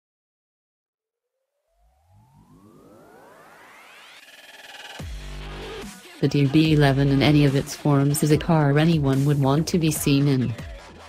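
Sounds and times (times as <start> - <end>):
synthesized rising sweep: 1.5 - 9.7.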